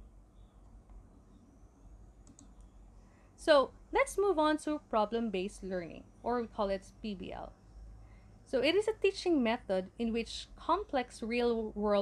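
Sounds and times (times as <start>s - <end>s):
low room hum: 0.0s - 12.0s
faint clicks: 2.2s - 2.8s.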